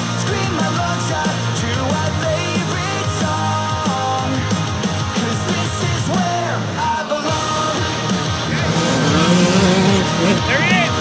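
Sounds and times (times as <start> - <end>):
rock music: 0.0 - 11.0
dirt bike engines revving: 7.3 - 11.0.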